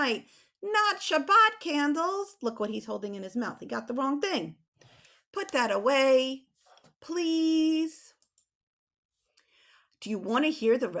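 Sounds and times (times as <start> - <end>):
faint breath: 4.8 - 5.3, 9.4 - 10.0.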